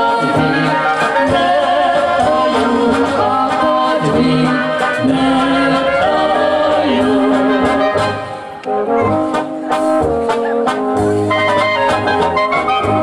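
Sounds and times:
voices singing: 0.0 - 9.2
brass band playing: 0.0 - 13.0.

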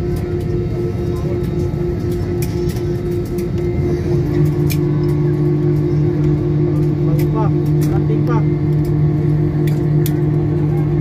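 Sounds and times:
jet engines droning in cabin: 0.0 - 11.0.

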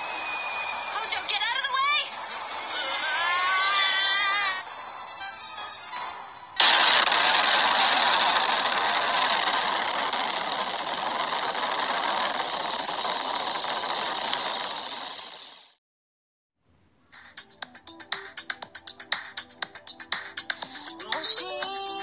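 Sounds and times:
explosion blast and roar: 6.6 - 15.5.

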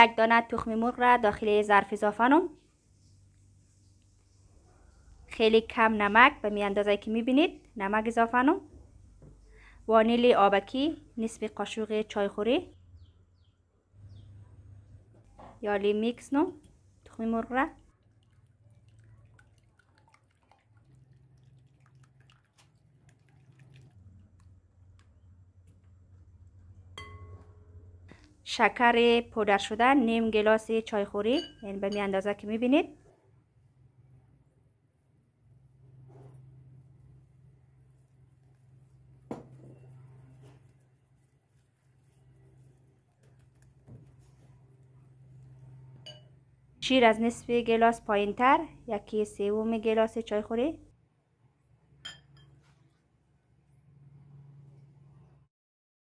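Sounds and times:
low steady hum: 0.0 - 55.5
egg whisked in glass bowl: 16.0 - 27.8, 31.3 - 32.2, 37.8 - 46.3
whisk beating eggs in glass bowl: 17.6 - 25.2.

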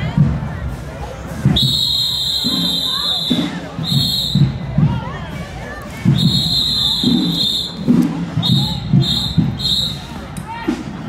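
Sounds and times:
crowd voices: 0.0 - 11.0
drum cadence: 0.0 - 11.0
shrill whistle blasts: 1.6 - 4.6, 6.1 - 10.1.

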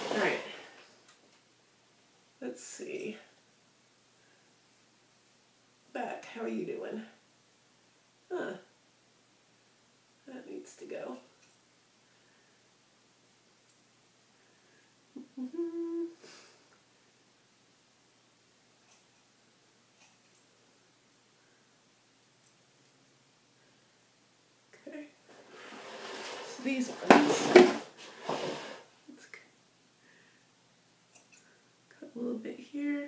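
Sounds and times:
woman's wordless vocal sounds: 15.1 - 16.2
woman humming: 15.1 - 16.5.

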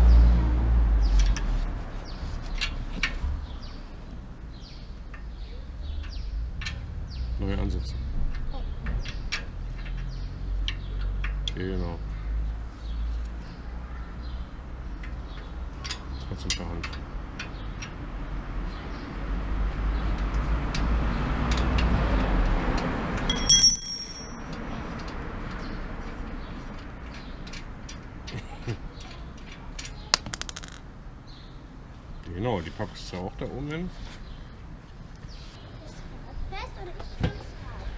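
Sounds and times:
bright metallic ring: 23.3 - 24.5
hand tools clicking on bicycle chain: 23.3 - 24.5.

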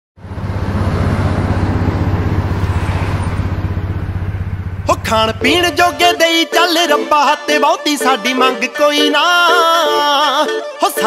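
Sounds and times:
motorcycle engine running: 0.2 - 6.4.

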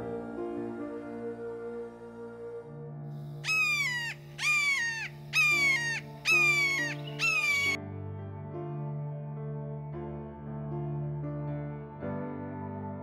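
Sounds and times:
soft piano music: 0.0 - 13.0
bird calling falling notes: 3.4 - 7.8.

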